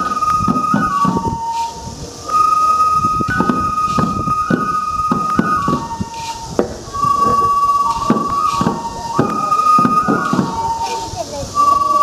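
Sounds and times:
bamboo flute high notes: 0:00.0 - 0:12.0
small hand drums beating: 0:00.0 - 0:12.0.

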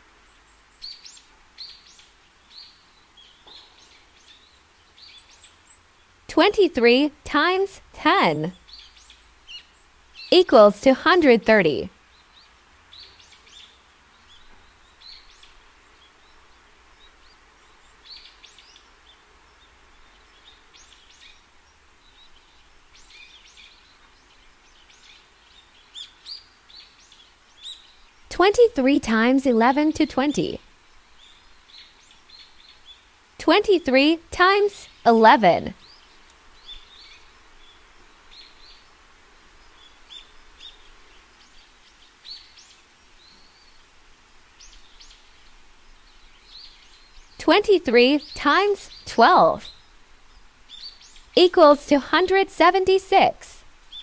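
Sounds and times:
small birds chirping: 0:00.0 - 0:54.0
soft steady hiss: 0:00.0 - 0:54.0.

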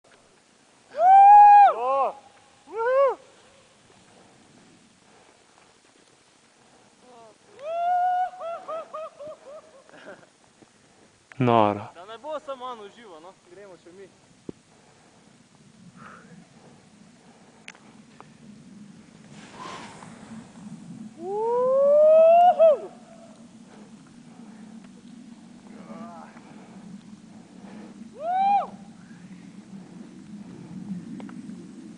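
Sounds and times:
person whooping and hooting: 0:00.9 - 0:03.4, 0:07.0 - 0:09.8, 0:21.2 - 0:23.3, 0:28.1 - 0:28.9
steady low hum: 0:08.8 - 0:31.9.

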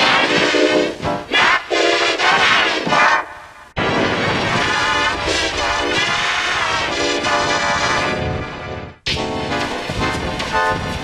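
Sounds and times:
detuned layered advert music: 0:07.2 - 0:11.0.

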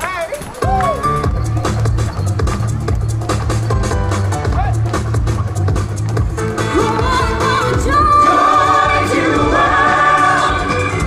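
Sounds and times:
instrumental backing: 0:00.6 - 0:11.0
choir singing pop song: 0:06.7 - 0:11.0.

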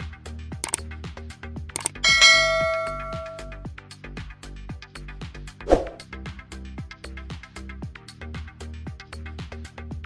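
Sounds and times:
background music with steady beat: 0:00.0 - 0:10.0
notification bell ding: 0:01.8 - 0:03.6.

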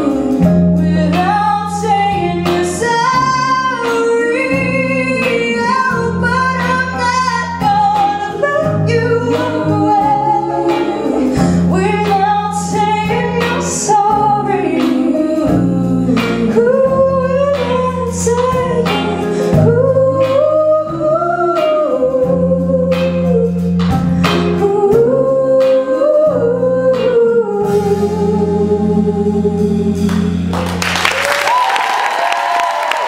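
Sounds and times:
women singing pop ballad: 0:00.0 - 0:30.4
sustained bass line: 0:00.0 - 0:31.4
guitar: 0:00.0 - 0:33.0.

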